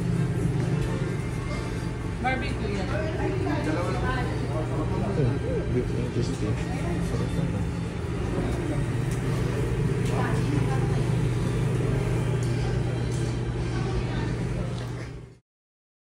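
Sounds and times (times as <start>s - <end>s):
steady low hum: 0.0s - 15.4s.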